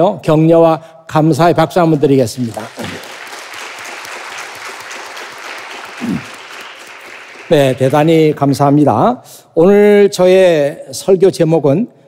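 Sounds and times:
congregation clapping: 1.9s - 8.6s.

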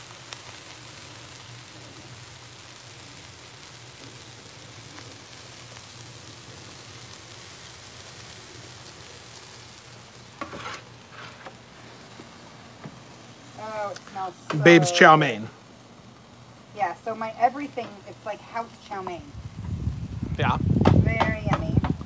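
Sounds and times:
food sizzling on griddle: 0.0s - 22.0s.

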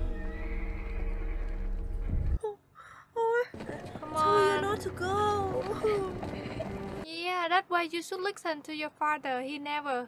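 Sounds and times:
horse whinnying: 0.0s - 1.8s.

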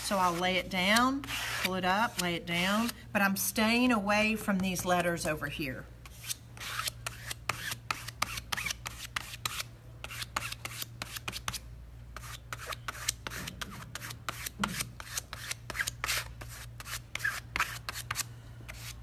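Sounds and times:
spreader scraping paste on stencil: 0.0s - 3.0s, 6.0s - 19.0s.

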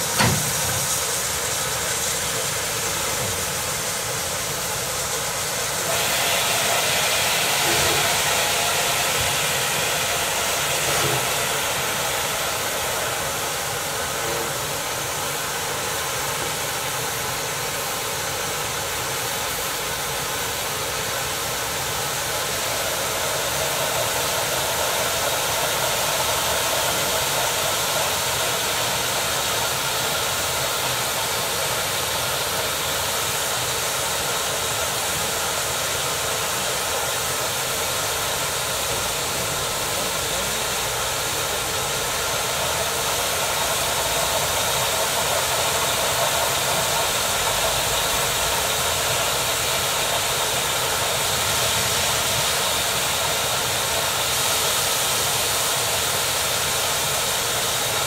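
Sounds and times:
steam locomotive hissing: 0.0s - 58.0s.

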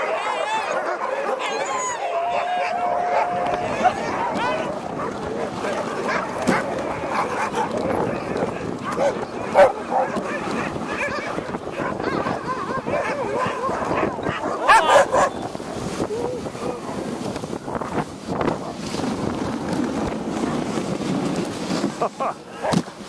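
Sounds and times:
dogs barking and yipping: 0.0s - 15.6s.

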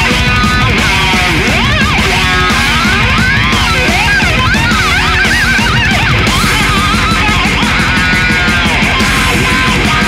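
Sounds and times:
distorted rhythm guitar: 0.0s - 10.0s
driving drum beat: 0.0s - 10.0s
squealing lead guitar: 0.0s - 10.0s.

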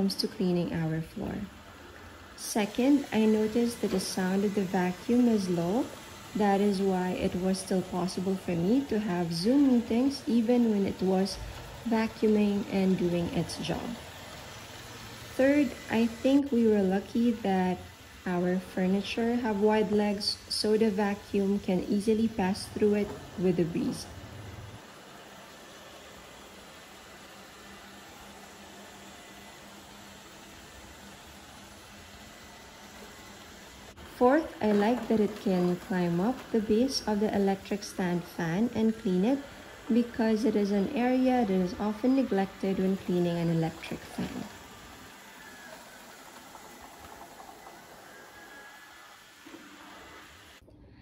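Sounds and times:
robot vacuum cleaner running: 0.0s - 50.6s.

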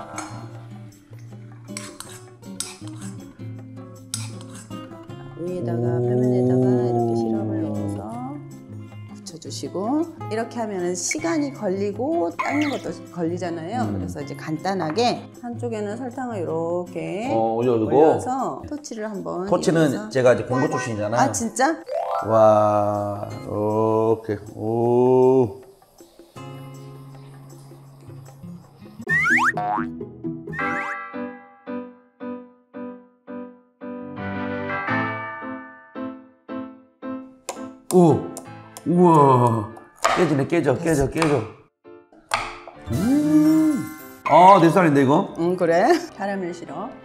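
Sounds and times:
background music: 0.0s - 47.0s
boing-like cartoon sound effects: 29.1s - 31.0s
bouncy tune: 29.1s - 31.0s.

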